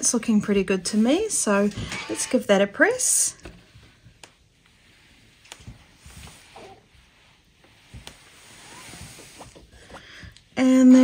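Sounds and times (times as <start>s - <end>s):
iron sliding over cloth: 0.0s - 11.0s.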